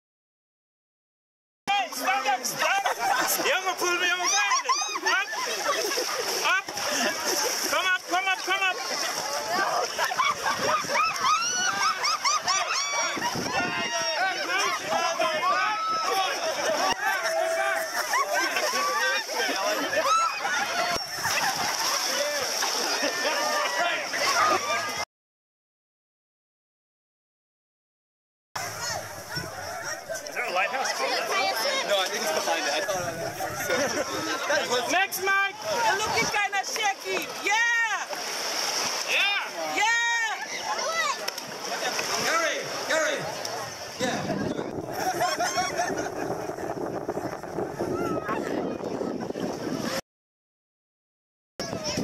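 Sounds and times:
crowd chattering: 1.7 - 25.0, 28.6 - 50.0, 51.6 - 52.0.

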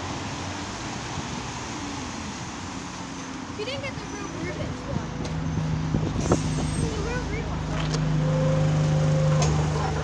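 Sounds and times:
bus diesel engine humming: 0.0 - 10.0.

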